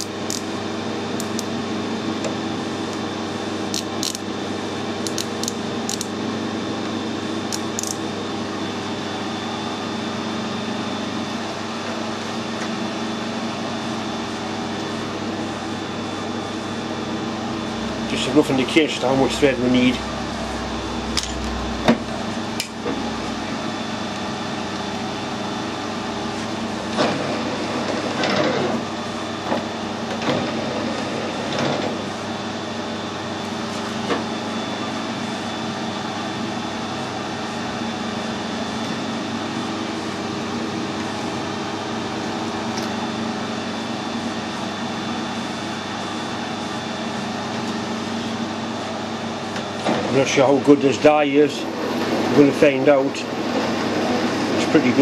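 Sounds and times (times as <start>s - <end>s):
lathe machine hum: 0.0s - 55.0s.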